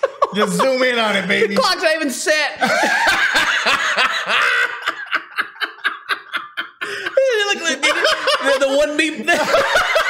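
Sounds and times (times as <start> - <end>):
men laughing hard: 0.0 - 1.6, 2.6 - 10.0
breathy wheezing laughter: 2.6 - 7.8.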